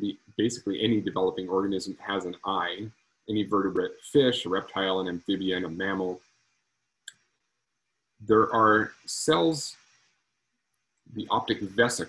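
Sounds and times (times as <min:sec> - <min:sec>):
man speaking: 0:00.0 - 0:06.2, 0:08.2 - 0:09.7, 0:11.1 - 0:12.0.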